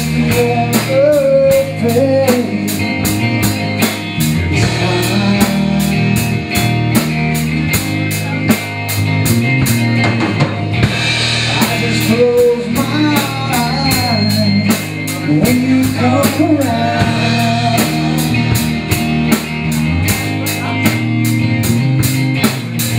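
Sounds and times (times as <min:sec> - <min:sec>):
rock band playing: 0:00.0 - 0:22.9.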